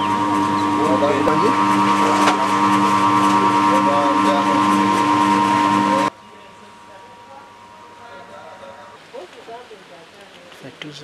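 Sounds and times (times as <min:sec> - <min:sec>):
machine humming: 0:00.0 - 0:10.0
indistinct voices talking: 0:00.0 - 0:11.0.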